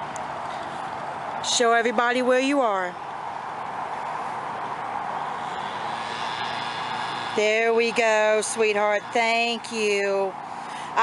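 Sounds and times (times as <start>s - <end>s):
distant engine rushing: 0.0s - 11.0s.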